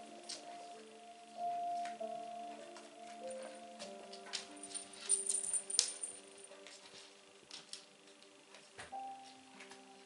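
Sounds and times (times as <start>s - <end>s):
soft background music: 0.0s - 10.0s
cat toy bell jingling: 4.6s - 6.4s.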